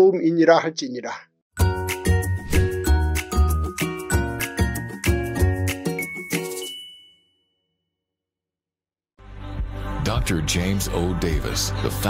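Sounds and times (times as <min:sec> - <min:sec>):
bell-like chiming jingle: 0:01.6 - 0:07.8.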